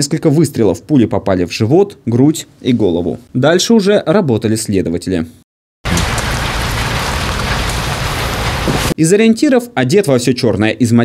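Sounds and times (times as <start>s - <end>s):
rain falling: 5.8s - 9.0s.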